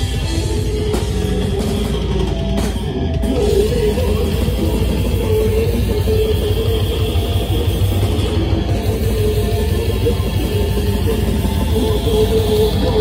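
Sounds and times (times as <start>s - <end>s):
death metal band playing live: 0.0s - 13.0s.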